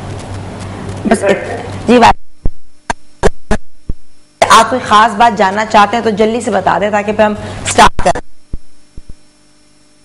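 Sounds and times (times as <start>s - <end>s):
faint electrical hum: 0.0s - 10.0s
woman speaking: 1.1s - 2.2s, 4.4s - 8.3s
soft low thumps: 2.1s - 4.3s, 8.2s - 9.3s.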